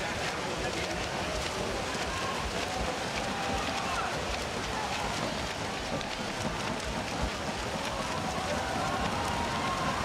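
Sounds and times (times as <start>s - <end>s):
swimmers splashing: 0.0s - 10.0s
spectators cheering: 1.8s - 5.3s, 7.6s - 10.0s.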